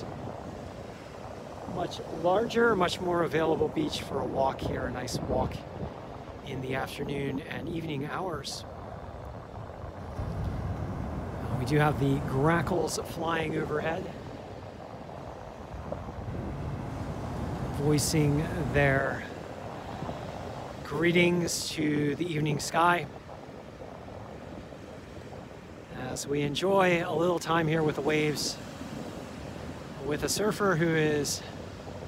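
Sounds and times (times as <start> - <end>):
waves breaking on sandy beach: 0.0 - 32.0
wind rumbling on microphone: 0.0 - 32.0.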